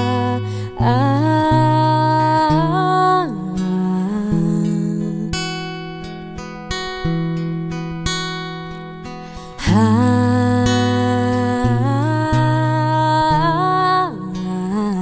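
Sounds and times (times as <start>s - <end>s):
fingerpicked acoustic guitar: 0.0s - 15.0s.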